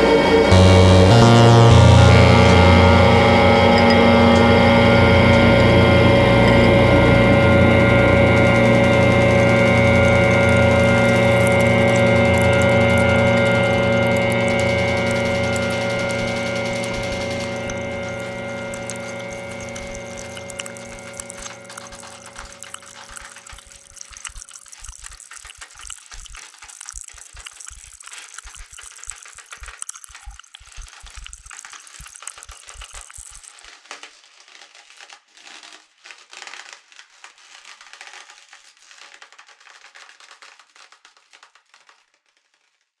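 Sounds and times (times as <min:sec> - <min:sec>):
crackling rattling electronic music: 0:00.0 - 0:36.5.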